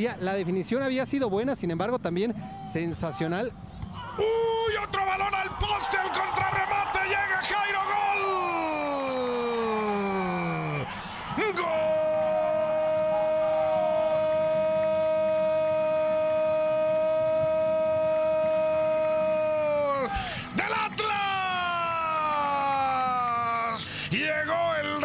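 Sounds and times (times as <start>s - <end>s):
commentator's long held goal cry: 4.2s - 24.9s.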